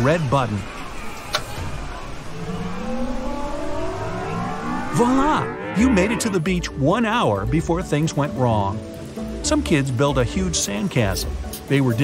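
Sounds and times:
whooshing rush with rising whine: 1.8s - 6.8s.

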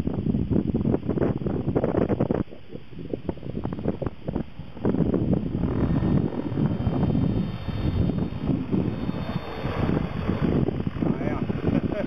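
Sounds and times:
model helicopter rotor and motor: 0.0s - 12.0s
wind buffeting microphone: 0.0s - 12.0s.

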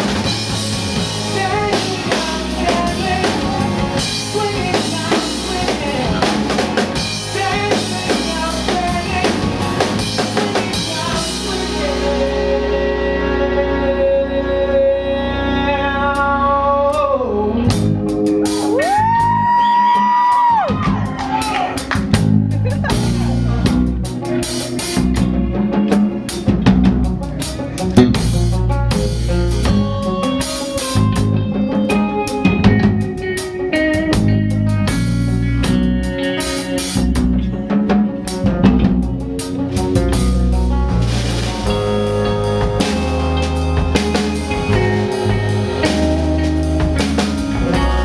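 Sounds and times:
drum kit steady beat: 0.0s - 12.4s, 17.7s - 48.0s
live rock band playing: 0.0s - 48.0s.

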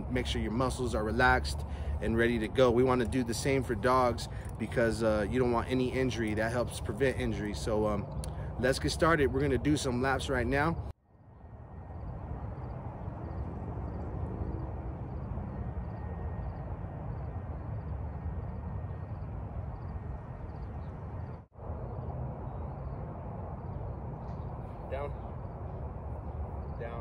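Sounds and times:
distant traffic: 0.0s - 27.0s
wind: 0.0s - 27.0s.

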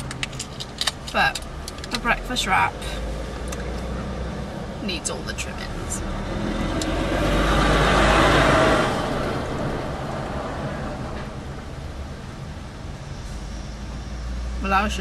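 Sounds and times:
low rumble inside car: 0.0s - 15.0s
rushing noise: 5.5s - 14.6s.

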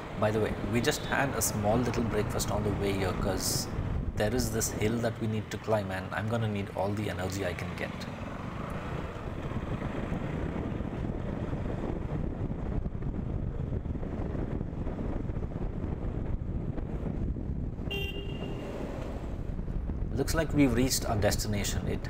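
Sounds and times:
wind noise: 0.0s - 7.2s, 8.2s - 22.0s
motorcycle engine rumble: 0.0s - 22.0s
horn toot: 17.9s - 18.8s.

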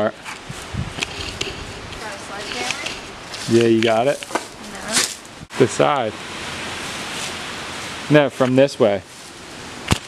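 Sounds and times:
outdoor background noise: 0.0s - 10.0s
faint voices: 2.0s - 5.0s.

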